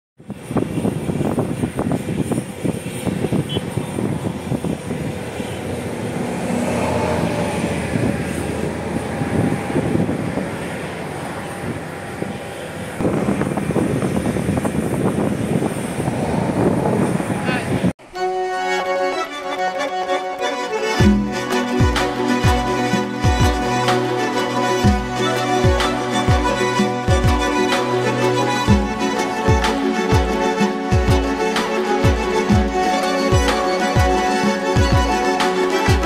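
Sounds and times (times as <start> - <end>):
motor traffic passing: 0.2 - 36.0.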